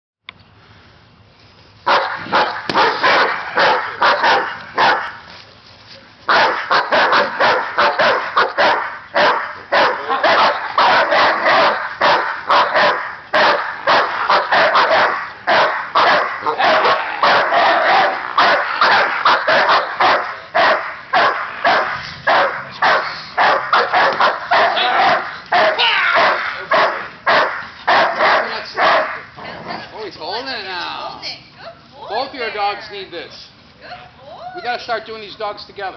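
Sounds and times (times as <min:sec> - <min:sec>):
dogs barking fast: 0:01.8 - 0:05.3, 0:06.3 - 0:29.4.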